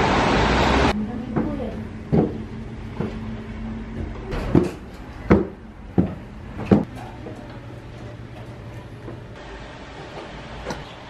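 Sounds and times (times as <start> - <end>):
footsteps on wooden stairs: 1.3 - 3.3, 3.9 - 9.2.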